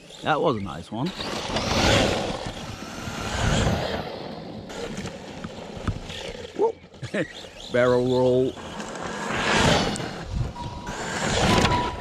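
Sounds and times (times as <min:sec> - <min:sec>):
rc truck driving over sand: 0:00.0 - 0:12.0.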